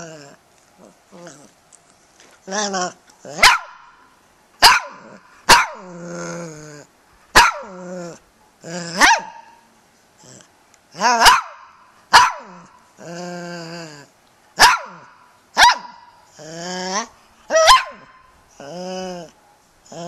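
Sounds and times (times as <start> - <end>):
dog yowling: 2.5 - 3.8, 16.6 - 19.3
dog barking: 3.4 - 4.0, 4.6 - 5.8, 7.4 - 7.7, 9.0 - 9.6, 11.1 - 12.6, 14.6 - 16.1, 17.5 - 18.2.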